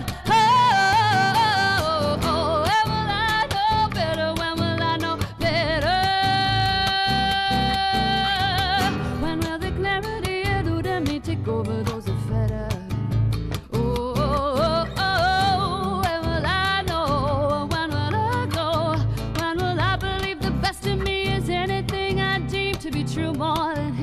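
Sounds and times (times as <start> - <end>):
strummed acoustic guitar: 0.0 - 24.0
woman singing: 0.0 - 24.0.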